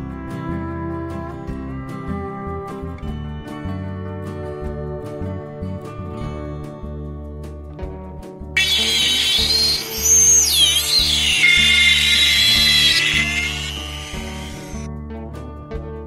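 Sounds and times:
rotary tool motor whine: 8.6 - 14.9.

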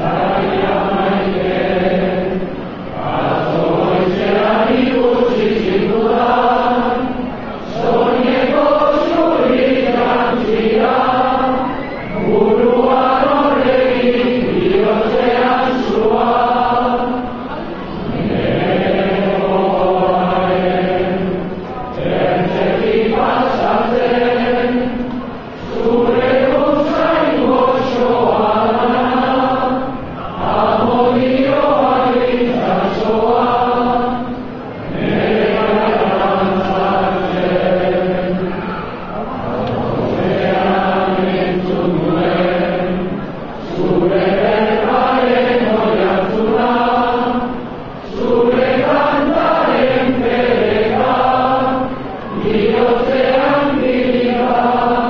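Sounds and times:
crowd singing in unison: 0.0 - 55.0.

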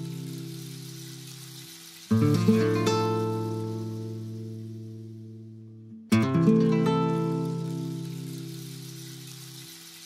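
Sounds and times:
acoustic guitar chord strummed: 0.0 - 1.5, 2.1 - 9.5.

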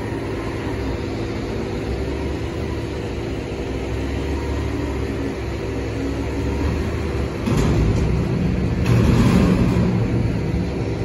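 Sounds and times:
garbage truck engine revving: 3.9 - 11.0.

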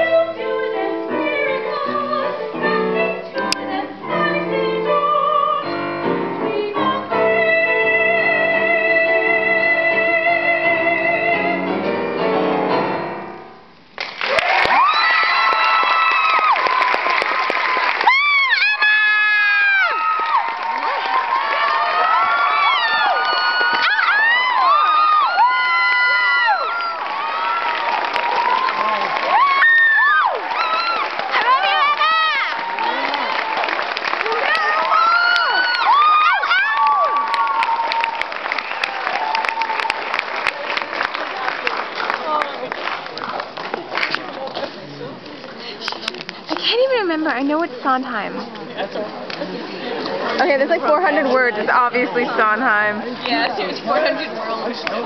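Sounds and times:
woman singing: 0.0 - 11.7
piano chords: 0.0 - 13.8
audience applause and cheering: 14.0 - 44.5
audience whooping: 14.2 - 41.7.

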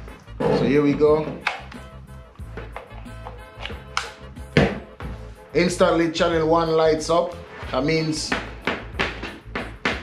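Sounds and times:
background music: 0.0 - 10.0
plug clicking into socket: 1.4 - 1.8.

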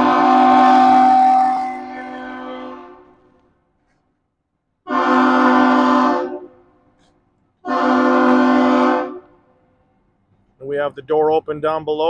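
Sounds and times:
ship horn blasts: 0.0 - 3.4, 4.9 - 6.7, 7.6 - 9.5.

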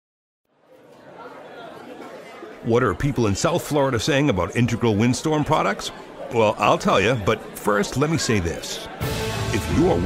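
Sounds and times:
background chatter of voices: 0.5 - 10.0.

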